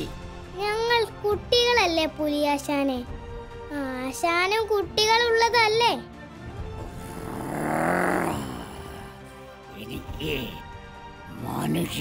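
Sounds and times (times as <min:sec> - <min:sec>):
tiger growl: 0:06.9 - 0:09.3.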